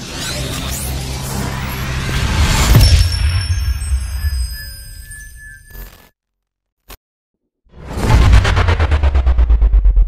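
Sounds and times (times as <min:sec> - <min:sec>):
deep rumble: 0:07.7 - 0:10.0.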